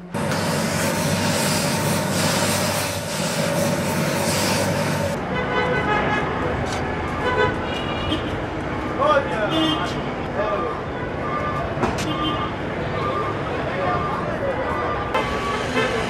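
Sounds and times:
distant traffic: 0:00.0 - 0:16.0
steam iron hissing: 0:00.1 - 0:05.2.

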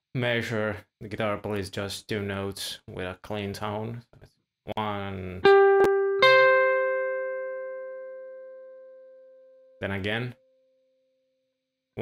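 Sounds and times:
electric guitar notes ringing: 0:05.4 - 0:09.8.

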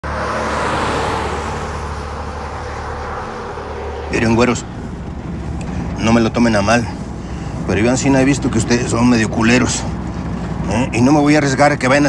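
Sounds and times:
pickup truck passing: 0:00.0 - 0:12.0.

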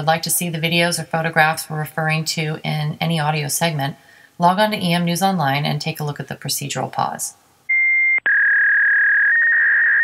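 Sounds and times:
electronic beep tone: 0:07.7 - 0:10.0.

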